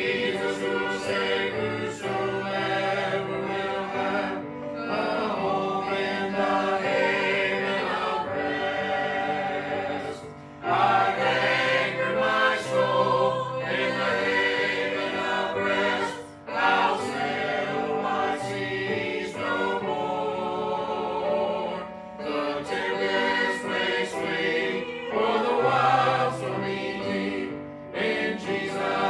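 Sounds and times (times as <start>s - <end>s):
choir singing a hymn: 0.0s - 29.0s.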